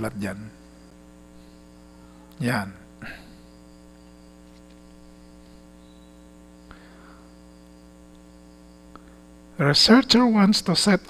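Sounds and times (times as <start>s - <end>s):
electrical mains hum: 0.0s - 11.0s
faint rustle: 3.1s - 6.3s.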